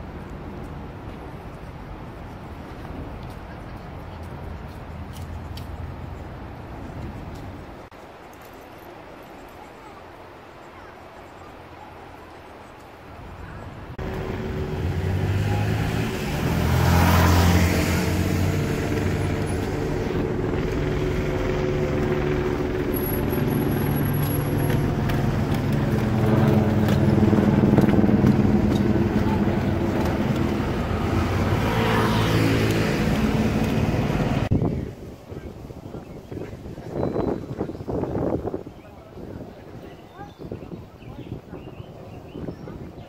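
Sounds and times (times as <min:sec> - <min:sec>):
engine noise: 0:13.8 - 0:34.5.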